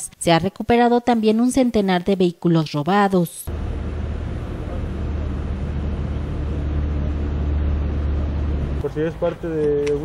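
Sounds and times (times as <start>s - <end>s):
road noise: 3.5s - 10.0s
vehicle engine idling: 3.5s - 10.0s.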